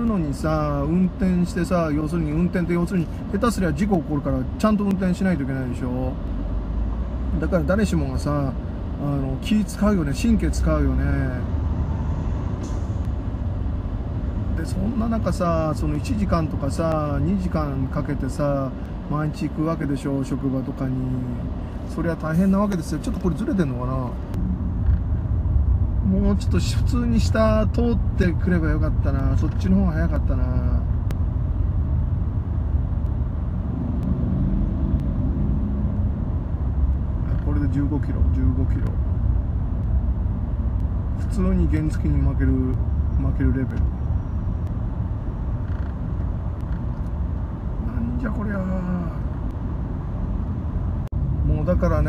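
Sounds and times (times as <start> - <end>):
car engine and tyres rumbling: 0.0 - 52.0.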